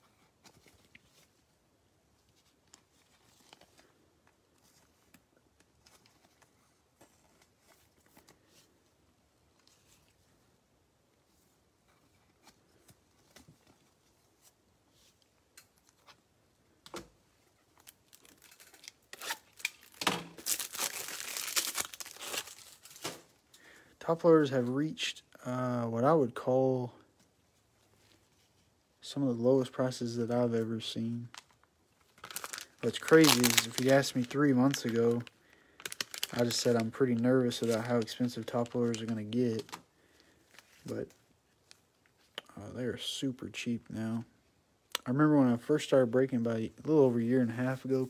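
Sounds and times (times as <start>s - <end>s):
plastic crinkling and tearing: 17.7s - 23.3s, 31.3s - 39.8s.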